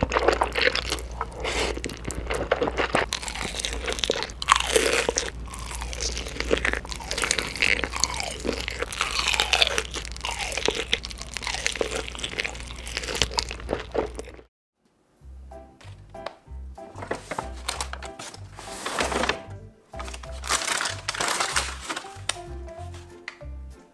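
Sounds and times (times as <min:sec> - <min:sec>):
crisp crunching and chewing: 0:00.0 - 0:14.5, 0:20.0 - 0:22.4
noodles slurped: 0:00.0 - 0:14.5.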